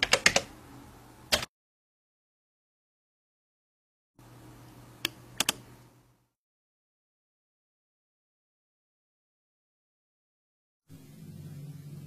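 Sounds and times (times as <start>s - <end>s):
low steady hum: 4.2s - 6.3s, 10.9s - 12.0s
computer mouse clicks: 5.0s - 5.6s.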